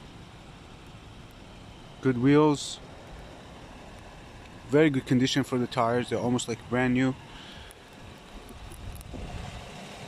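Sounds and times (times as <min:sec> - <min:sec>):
wind on microphone: 0:08.5 - 0:09.8.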